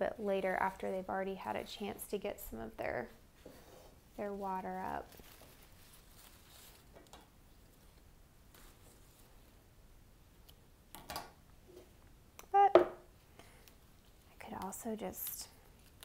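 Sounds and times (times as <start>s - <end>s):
leaves rustling: 4.7s - 7.0s.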